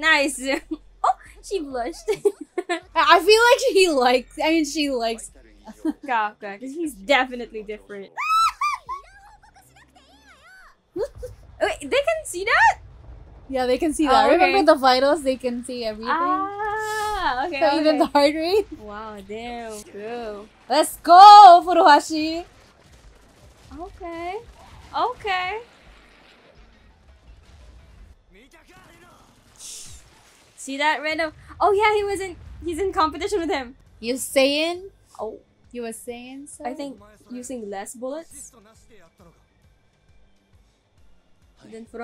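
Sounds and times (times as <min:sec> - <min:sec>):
woman giggling: 0:00.5 - 0:00.8, 0:01.9 - 0:03.0, 0:05.7 - 0:06.2, 0:08.2 - 0:09.4, 0:11.0 - 0:11.3, 0:16.8 - 0:18.5
woman squealing: 0:08.1 - 0:09.5, 0:16.2 - 0:18.0
low rumble: 0:11.0 - 0:21.1, 0:31.1 - 0:36.2
person speaking: 0:13.6 - 0:22.4
short hiss: 0:29.5 - 0:30.2.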